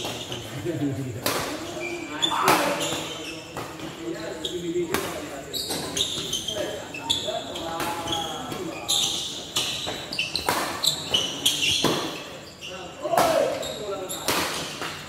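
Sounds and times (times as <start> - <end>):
shoes squeaking on court: 0.0 - 15.0
voices murmuring in hall: 0.0 - 15.0
rackets hitting shuttlecock: 1.2 - 1.7, 9.3 - 12.4, 14.2 - 15.0.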